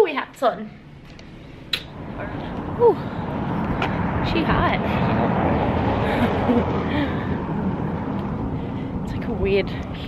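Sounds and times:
gusty rushing outdoor noise: 0.6 - 10.0.

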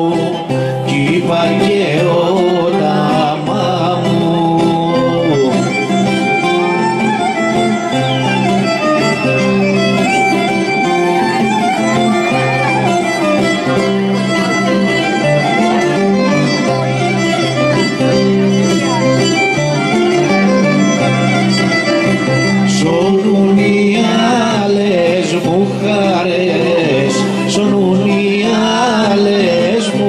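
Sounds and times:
lute strumming chords: 0.0 - 30.0
violin melody: 0.0 - 30.0.

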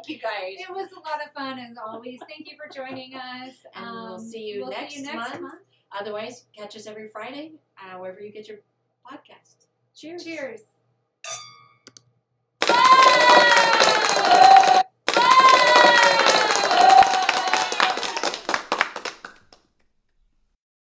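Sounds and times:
wine glasses clinking: 11.3 - 11.8.

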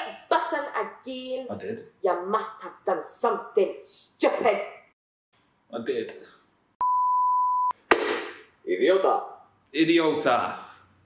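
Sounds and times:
electronic beep: 6.8 - 7.8.

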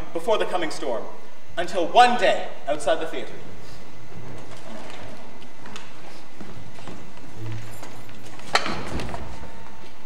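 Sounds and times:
background hiss: 0.0 - 10.0
faint footsteps on stage: 4.1 - 10.0.

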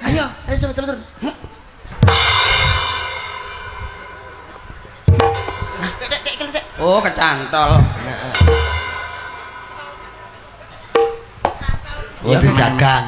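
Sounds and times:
drum strokes: 1.9 - 11.9
crash cymbal ringing: 2.0 - 11.6
kick drum: 5.1 - 5.9, 7.7 - 8.8.

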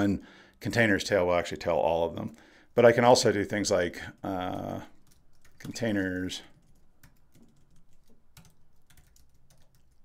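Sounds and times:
faint keyboard typing: 4.0 - 10.0.

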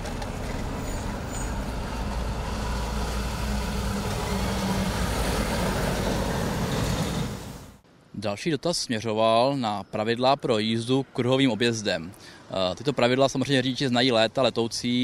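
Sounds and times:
diesel engine and tyre noise: 0.0 - 7.8
vehicles driving past: 0.0 - 7.8.

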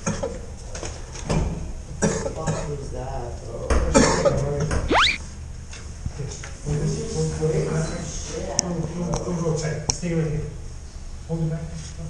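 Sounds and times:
rising whistle-like sweep: 4.9 - 5.2.

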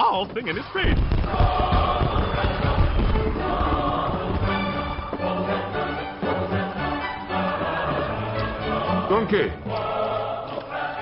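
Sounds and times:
backing music: 0.8 - 11.0
choir singing sustained notes: 1.2 - 11.0.

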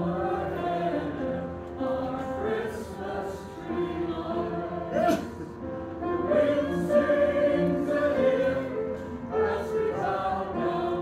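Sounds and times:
choir singing in harmony: 0.0 - 11.0.

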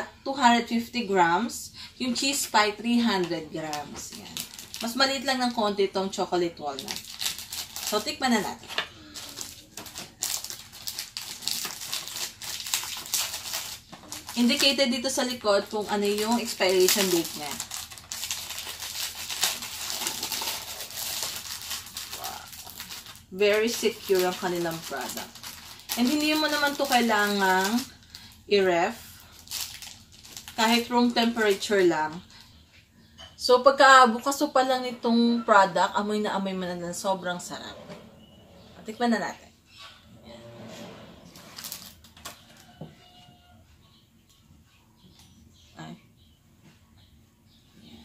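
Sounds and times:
plastic wrap crinkling: 2.2 - 32.2, 41.3 - 42.8.

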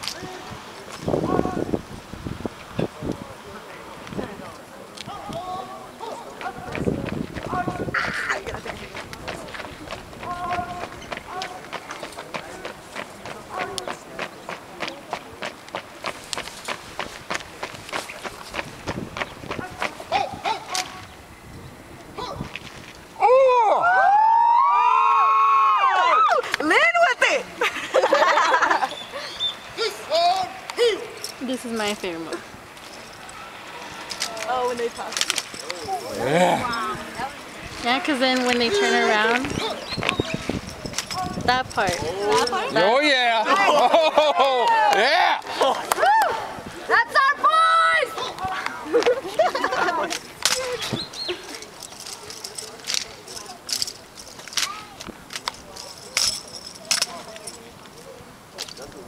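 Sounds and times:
human voices hooting: 23.2 - 26.5, 43.5 - 46.6.

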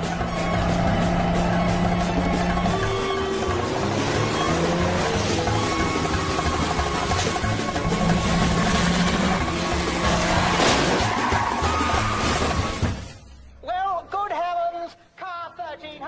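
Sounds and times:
racing car engines: 0.0 - 12.9
film music: 0.0 - 14.4.

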